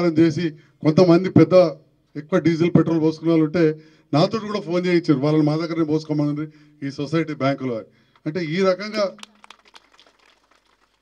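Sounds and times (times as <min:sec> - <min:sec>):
man's amplified voice: 0:00.0 - 0:09.3.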